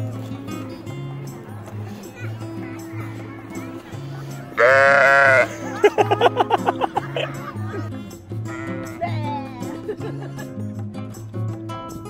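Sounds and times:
background music: 0.0 - 12.0
sheep bleating: 4.5 - 5.7
stuttering short cries: 4.6 - 5.5.

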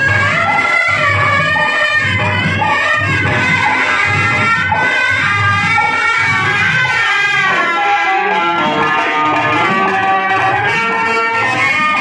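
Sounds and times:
music over horn loudspeaker: 0.0 - 12.0.

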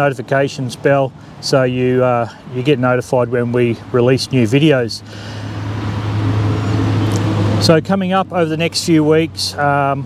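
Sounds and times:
vehicle driving past: 5.0 - 9.2.

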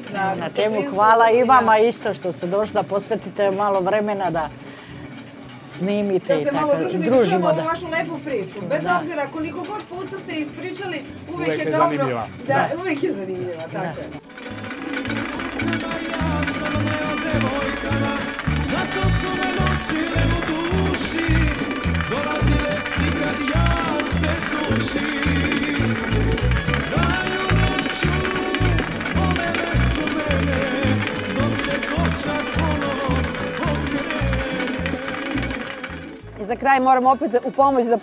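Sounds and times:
music with steady beat: 14.2 - 36.4
person singing: 15.0 - 36.4.

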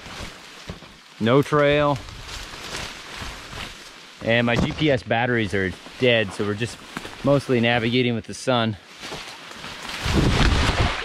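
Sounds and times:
rustling leaves and branches: 0.0 - 11.0
rushing water splash: 9.1 - 11.0.

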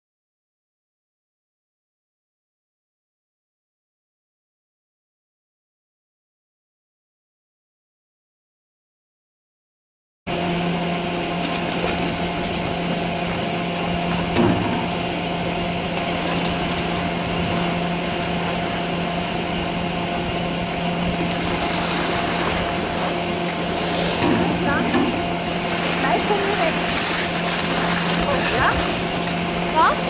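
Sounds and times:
lift machinery humming: 10.3 - 30.0.

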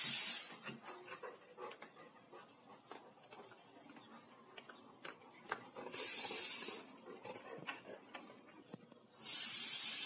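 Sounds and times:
dog breathy burst: 0.0 - 0.9, 5.8 - 7.0, 9.2 - 10.0.

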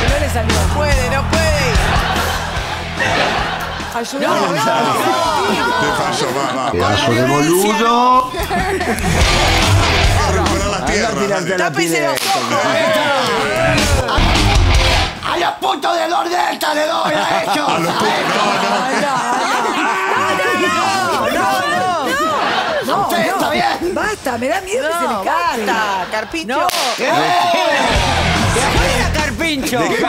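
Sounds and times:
people shouting: 0.0 - 11.2, 11.9 - 24.1, 24.8 - 29.2
low music: 0.0 - 11.4, 13.3 - 15.3, 27.8 - 30.0
toy pistol crack: 26.7 - 27.1.

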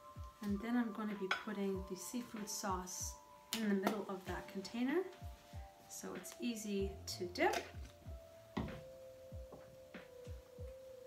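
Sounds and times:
soft deep drum beats: 7.7 - 10.8.

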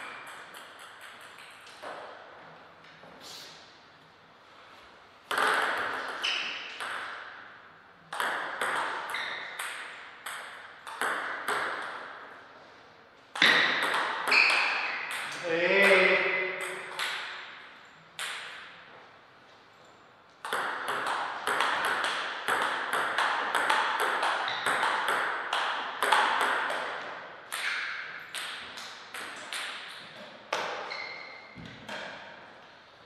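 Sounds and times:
person calling out: 15.3 - 16.4.

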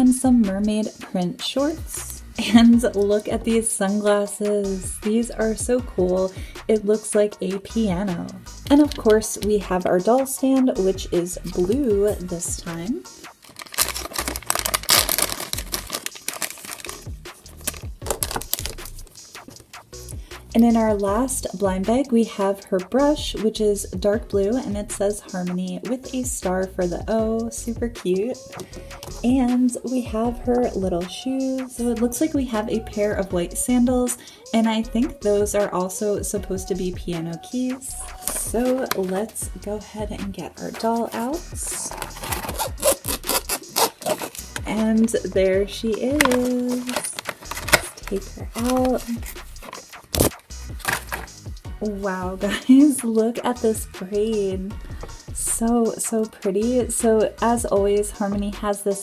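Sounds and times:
background music: 0.0 - 59.0
plastic packaging scraping: 13.2 - 19.6, 41.6 - 44.7, 46.1 - 51.4
plastic bag crinkling and tearing: 13.3 - 19.5, 41.8 - 44.7, 46.1 - 51.3.

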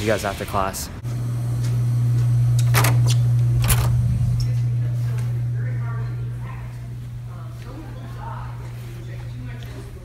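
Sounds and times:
low hum: 1.0 - 9.1.

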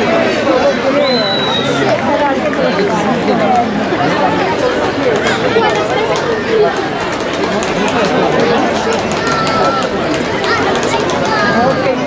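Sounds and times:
crowd chattering: 0.0 - 12.0
children calling out: 3.0 - 12.0.

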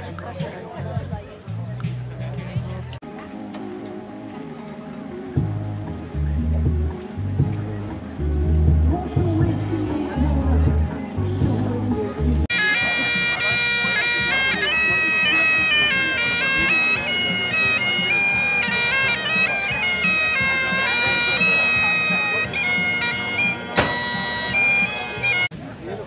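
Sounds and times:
bagpipes playing a tune: 12.4 - 25.5
sharp knock: 23.8 - 24.0.

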